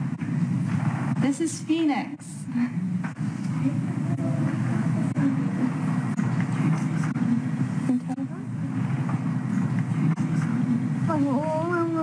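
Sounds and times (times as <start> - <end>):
low murmur of voices: 0.0 - 12.0
room rumble: 0.0 - 12.0.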